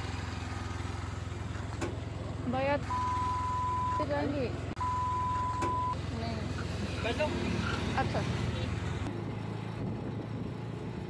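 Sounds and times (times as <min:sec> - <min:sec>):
auto-rickshaw engine idling: 0:00.0 - 0:11.0
voices: 0:02.4 - 0:04.6, 0:05.6 - 0:08.9
electronic censor bleep: 0:02.9 - 0:04.1, 0:04.8 - 0:06.0.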